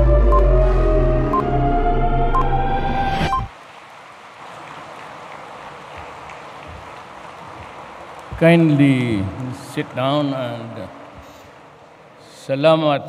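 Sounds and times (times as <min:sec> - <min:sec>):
broadcast intro music with sustained tones: 0:00.0 - 0:03.5
audience applauding: 0:03.8 - 0:12.0.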